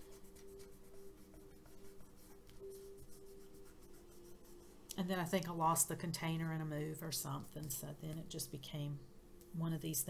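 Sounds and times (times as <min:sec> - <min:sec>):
fingertips rubbing paper: 0:00.0 - 0:04.7
faint steady hum: 0:00.0 - 0:10.0.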